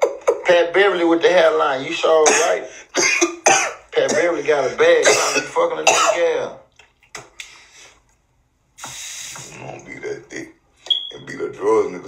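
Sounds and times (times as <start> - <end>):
man making vocal sounds: 8.8 - 10.4.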